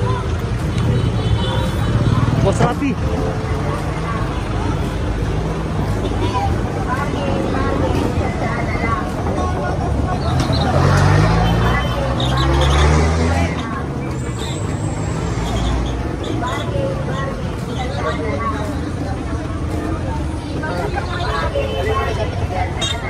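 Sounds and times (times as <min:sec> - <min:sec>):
crowd chatter: 0:00.0 - 0:23.0.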